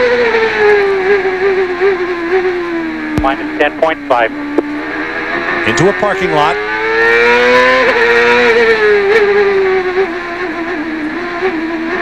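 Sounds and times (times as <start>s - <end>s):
race car engine: 0.0s - 12.0s.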